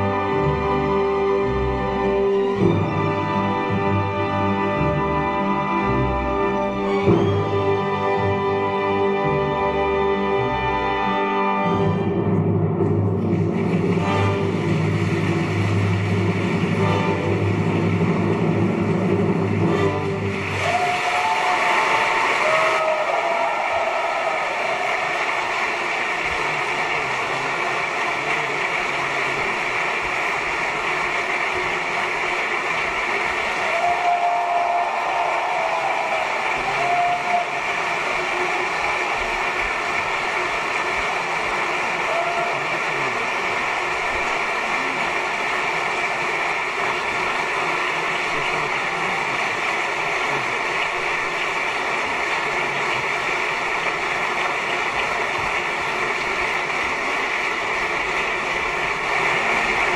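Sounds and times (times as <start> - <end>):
audience applause: 0.0 - 59.9.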